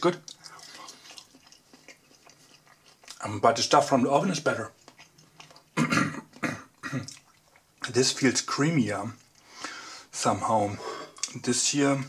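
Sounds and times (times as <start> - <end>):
close-up chewing: 0.0 - 9.7
wet mouth clicks: 0.2 - 3.2.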